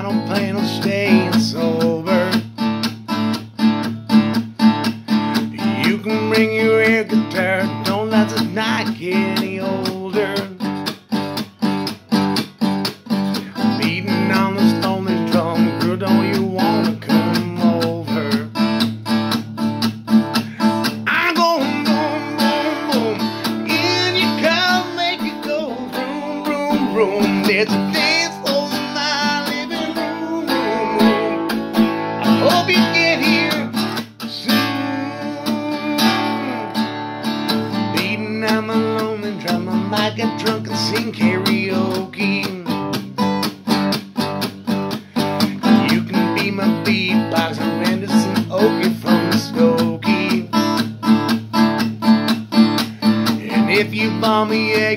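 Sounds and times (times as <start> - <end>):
acoustic guitar strummed chords: 0.0 - 54.9.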